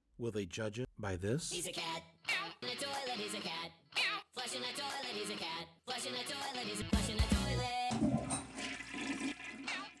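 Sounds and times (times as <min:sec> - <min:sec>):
toilet flushing: 0:07.9 - 0:10.0.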